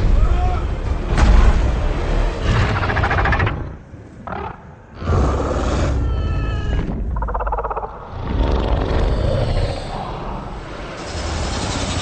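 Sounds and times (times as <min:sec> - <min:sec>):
monster roaring: 0:04.9 - 0:10.8.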